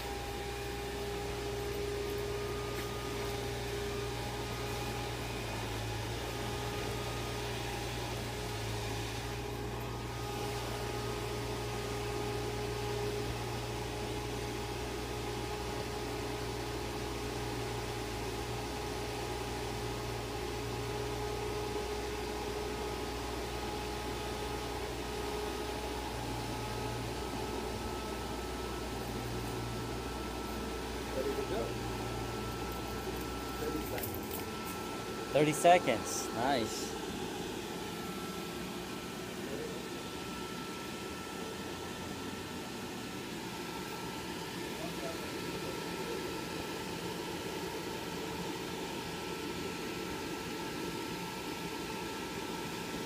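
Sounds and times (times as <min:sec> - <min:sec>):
inflation blower whirring: 0:00.0 - 0:53.0.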